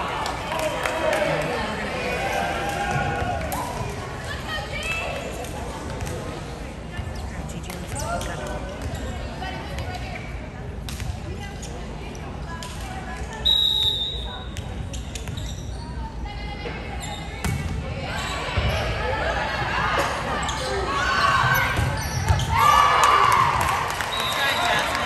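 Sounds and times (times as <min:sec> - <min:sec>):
referee's whistle: 0:13.4 - 0:14.4, 0:24.1 - 0:24.9.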